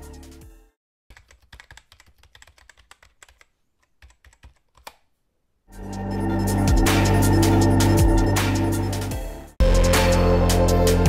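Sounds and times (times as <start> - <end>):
music: 0.0 - 0.8, 5.7 - 11.0.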